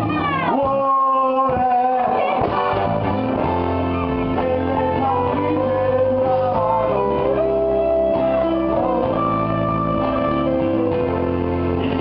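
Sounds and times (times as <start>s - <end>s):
acoustic guitars: 0.0s - 12.0s
man singing long note: 4.4s - 9.9s.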